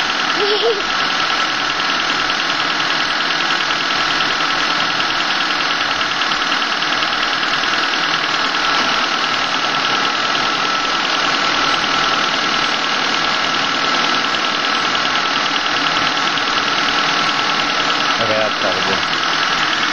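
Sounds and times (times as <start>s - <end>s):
car engine idling: 0.0s - 19.9s
thin steady whine: 0.0s - 19.9s.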